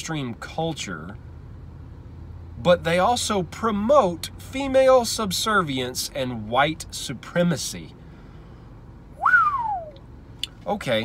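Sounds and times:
whistled note sliding down: 0:09.2 - 0:10.0.

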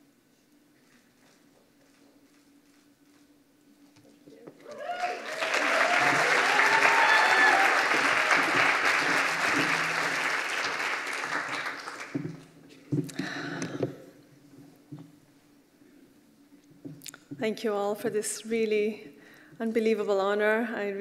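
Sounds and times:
audience applauding: 0:04.6 - 0:12.5.

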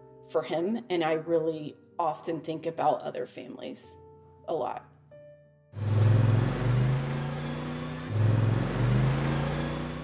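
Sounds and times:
vehicle engine revving: 0:05.8 - 0:10.0.

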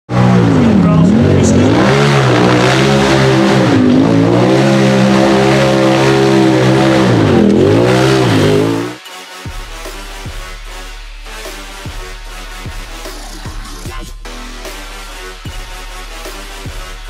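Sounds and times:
buggy engine revving: 0:00.1 - 0:09.0.

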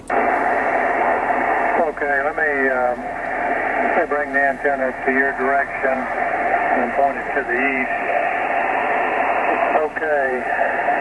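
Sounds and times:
radio receiver hiss: 0:00.0 - 0:11.0
voice over radio: 0:00.1 - 0:11.0.

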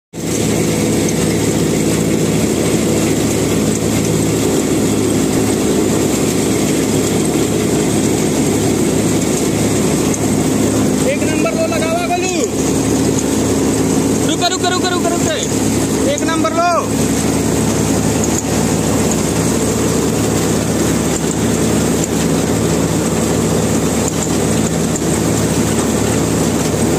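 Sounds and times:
auger pouring grain: 0:00.2 - 0:26.9
combine harvester running: 0:00.2 - 0:26.9
person speaking: 0:10.9 - 0:12.7, 0:14.2 - 0:17.0.

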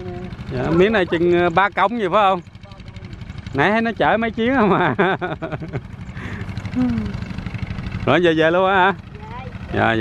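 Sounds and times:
diesel tractor engine idling: 0:00.0 - 0:05.0, 0:05.6 - 0:10.0.

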